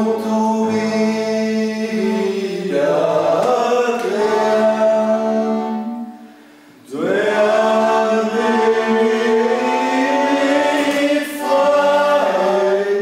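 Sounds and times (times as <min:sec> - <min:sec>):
accordion: 0:00.0 - 0:13.0
men singing held notes: 0:00.0 - 0:13.0.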